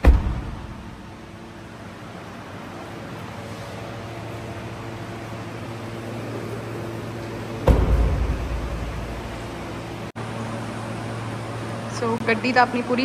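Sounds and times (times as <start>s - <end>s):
low thump: 0.0s - 0.8s, 7.6s - 9.2s
ventilation machine hum: 0.0s - 13.0s.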